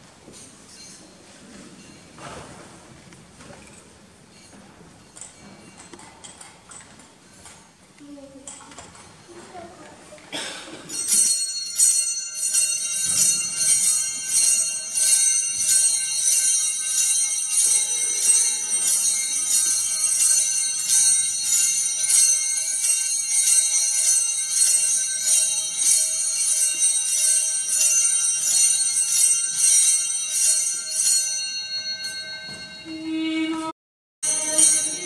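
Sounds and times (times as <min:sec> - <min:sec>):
small bells jingling: 0:00.2 - 0:02.2, 0:03.6 - 0:09.8, 0:10.8 - 0:33.6, 0:34.2 - 0:35.0.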